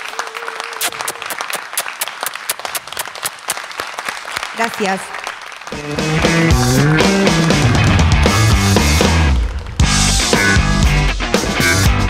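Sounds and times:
applause: 0.0 - 6.5, 7.1 - 8.1.

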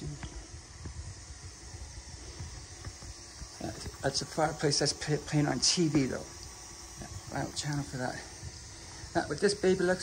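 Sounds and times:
fire crackling on a tv: 0.0 - 10.0.

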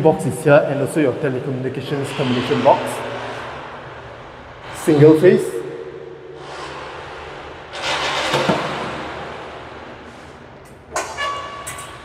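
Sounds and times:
vehicle passing outside: 1.1 - 7.8.

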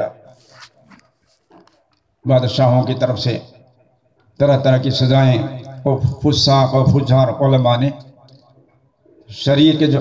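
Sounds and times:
man speaking: 2.2 - 3.7, 4.4 - 8.1, 9.2 - 10.0.

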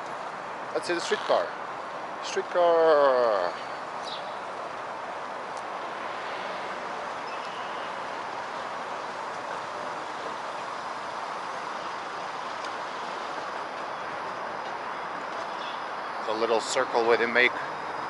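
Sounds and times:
street traffic: 0.0 - 18.0
streetcar running on tracks: 1.5 - 18.0.

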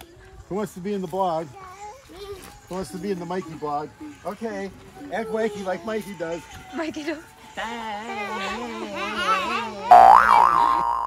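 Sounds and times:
children calling out: 7.8 - 10.9
cartoon boing sound effect: 9.9 - 11.0.

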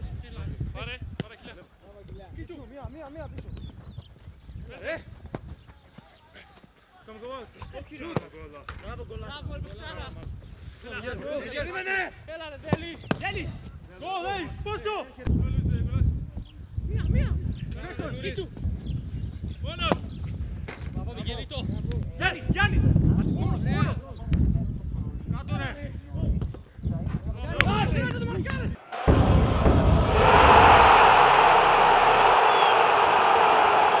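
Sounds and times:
low rumble: 28.8 - 33.8
footballers shouting: 28.8 - 34.0
loud rushing noise: 28.8 - 34.0.

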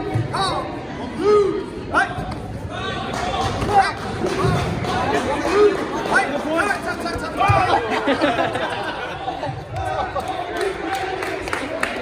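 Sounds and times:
indistinct chatter in a large hall: 0.0 - 12.0.

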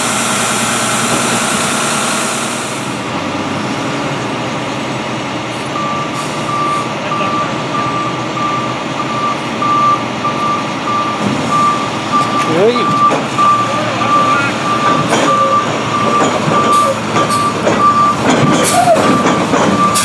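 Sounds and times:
truck engine running: 0.0 - 20.0
reversing alarm beeps: 5.8 - 20.0.

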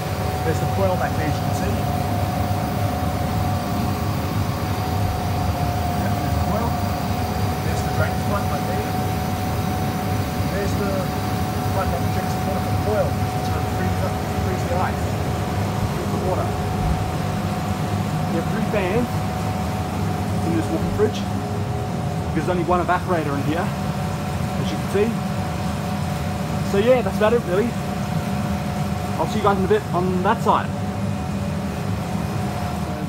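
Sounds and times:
evaporator fans whooshing and humming: 0.0 - 33.0
thin steady whine: 0.0 - 33.0.

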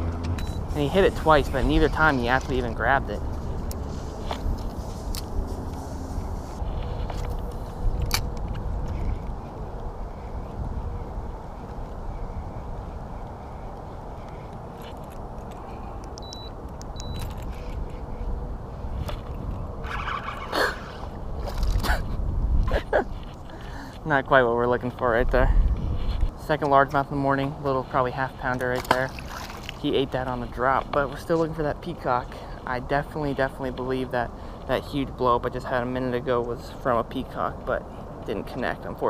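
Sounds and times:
wind rumble on microphone: 0.0 - 26.4
fish splashing out of water: 29.0 - 29.8.

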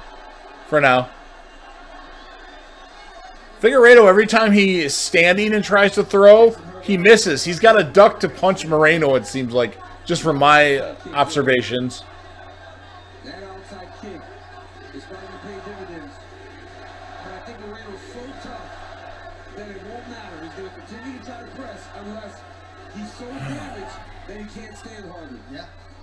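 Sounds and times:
faint television commentary voices: 0.5 - 26.0.

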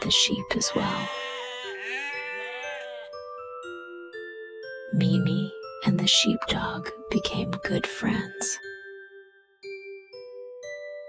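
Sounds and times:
faint steady background notes: 0.0 - 11.0
sheep bleating: 0.6 - 3.2.

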